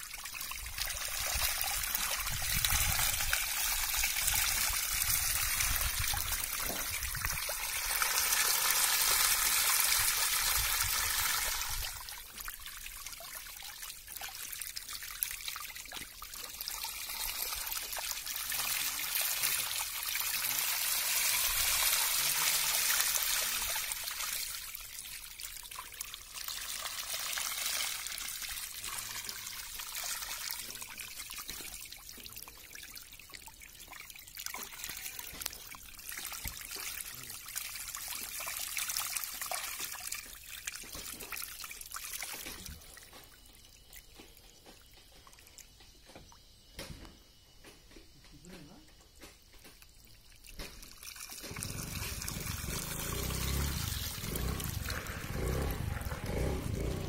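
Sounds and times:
water trickling over concrete: 0:00.0 - 0:47.5, 0:48.3 - 0:57.0.

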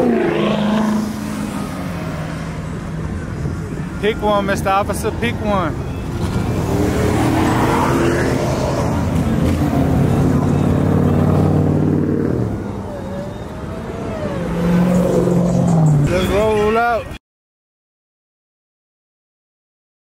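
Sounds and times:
car engines revving: 0:00.0 - 0:17.2.

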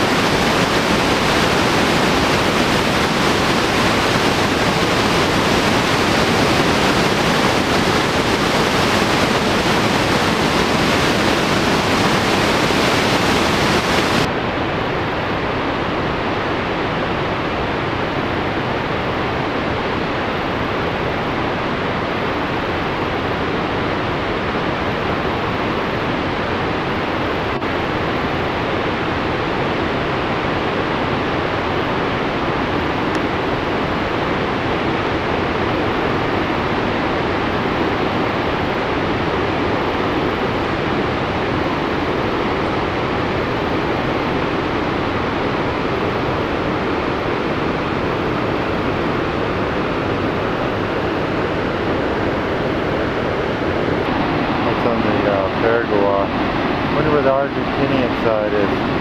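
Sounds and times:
waterfall rushing: 0:00.0 - 0:14.3, 0:30.5 - 0:59.0.

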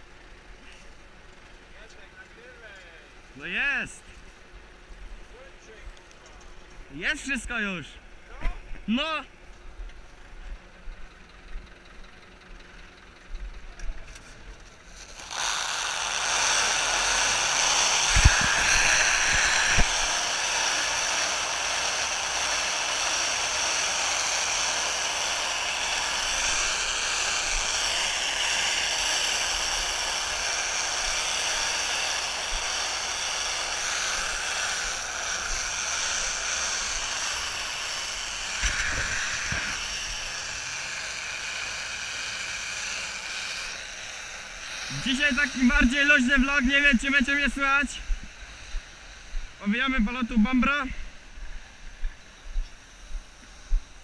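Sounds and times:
bale wrapper machine whirring: 0:14.0 - 0:46.6.

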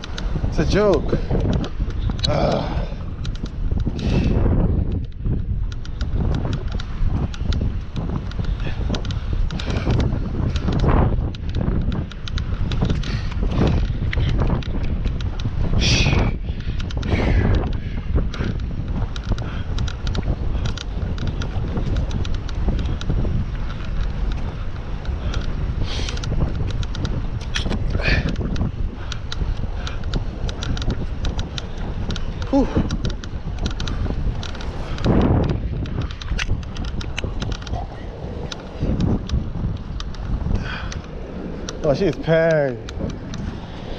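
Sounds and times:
wind buffeting microphone: 0:00.0 - 0:43.9
rider breathy exhale: 0:04.0 - 0:04.4.

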